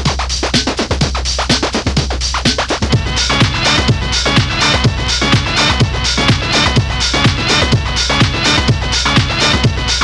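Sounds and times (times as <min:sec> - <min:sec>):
low bass: 0:02.8 - 0:10.0.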